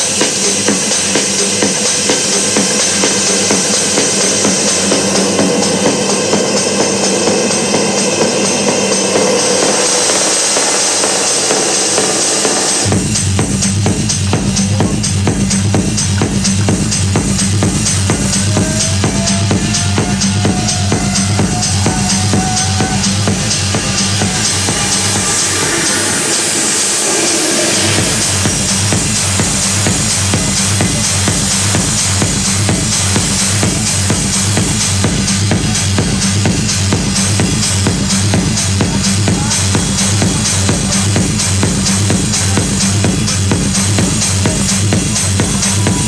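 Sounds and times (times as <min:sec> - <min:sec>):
steady held drone: 0:00.0 - 0:46.0
techno kick drum: 0:00.0 - 0:46.0
hissing noise wash: 0:17.3 - 0:34.6.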